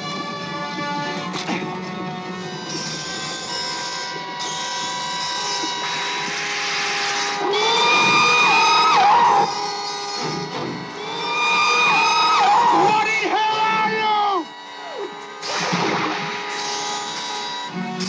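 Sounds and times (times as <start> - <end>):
film score with long held tones: 0.0 - 18.0
wavering gliding whale cry: 2.6 - 13.4, 14.2 - 15.6.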